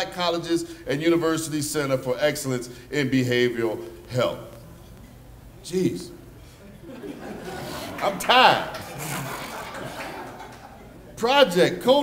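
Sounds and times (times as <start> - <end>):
soft room murmur: 0.0 - 12.0
low chuckle: 8.7 - 10.9.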